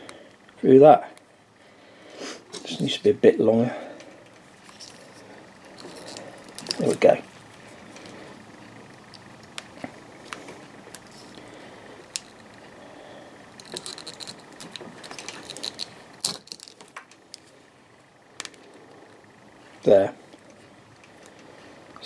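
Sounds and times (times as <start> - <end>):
small clicks and scratching: 4.2 - 8.2, 13.6 - 17.6.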